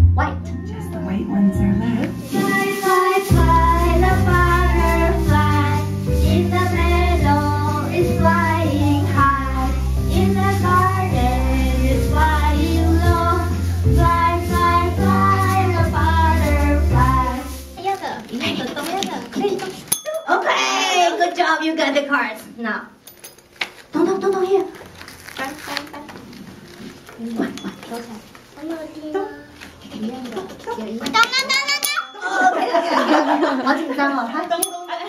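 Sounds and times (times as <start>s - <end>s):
instrumental backing with bass: 0.0s - 17.8s
children singing: 2.2s - 17.6s.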